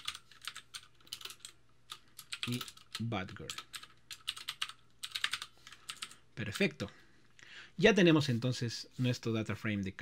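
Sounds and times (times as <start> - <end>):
typing on computer keyboard: 0.0 - 6.2.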